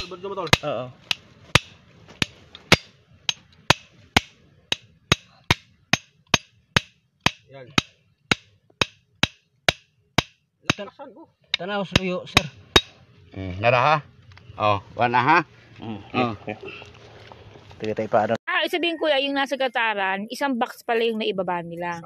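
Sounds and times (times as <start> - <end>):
hammer striking metal rod: 0.0 - 10.9, 11.5 - 13.0.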